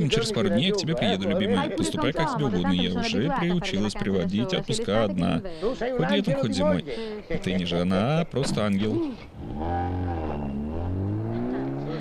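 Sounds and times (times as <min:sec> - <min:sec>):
car engine revving: 0:09.4 - 0:12.0.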